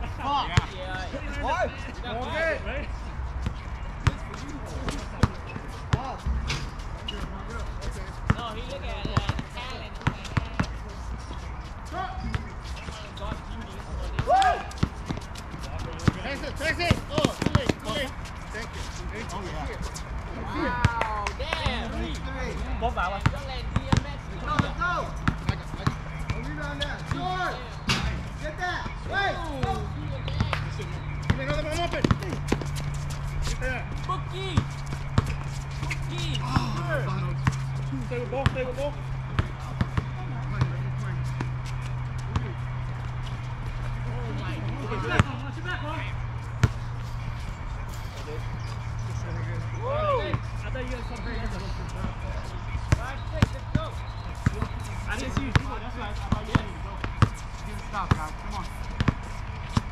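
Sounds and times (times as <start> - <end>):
players calling out: 0.0 - 59.9
basketball bouncing on hard court: 8.3 - 10.8, 14.1 - 18.0, 23.2 - 27.3, 29.6 - 32.9, 34.5 - 37.7, 38.4 - 43.0, 52.9 - 57.4.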